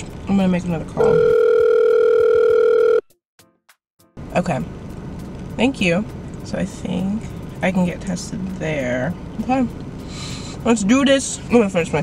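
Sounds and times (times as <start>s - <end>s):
steady telephone tone: 1.0s - 3.1s.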